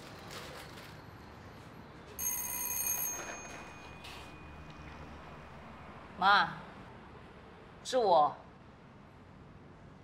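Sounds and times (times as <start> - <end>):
electronic doorbell ringing: 2.2 - 5.8.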